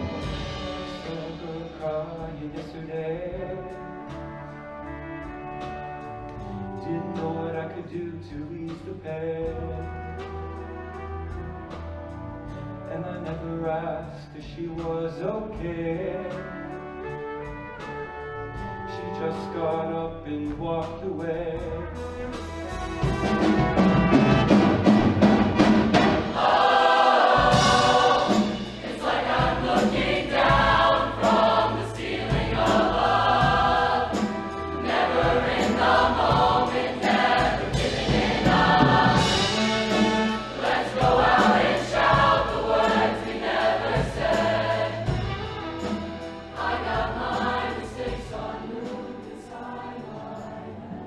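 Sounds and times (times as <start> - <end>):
choir singing in harmony: 0.0 - 3.3, 24.1 - 51.0.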